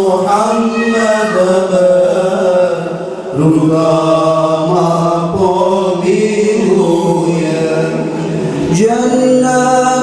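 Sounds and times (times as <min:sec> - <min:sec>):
men singing a devotional chant: 0:00.0 - 0:10.0.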